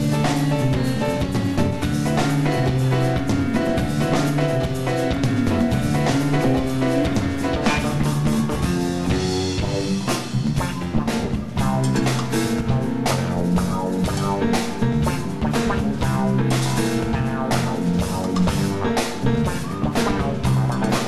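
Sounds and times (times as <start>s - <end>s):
rock band playing live: 0.0s - 21.0s.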